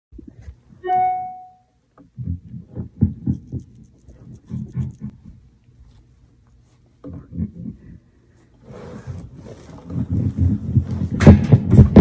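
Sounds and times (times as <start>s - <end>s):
ringing violin note: 0.8s - 1.6s.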